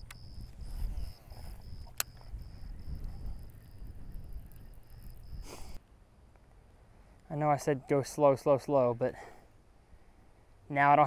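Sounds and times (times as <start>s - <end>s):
insect chirping: 0.0s - 5.8s
sharp click: 1.8s - 2.3s
brief hiss: 5.4s - 5.8s.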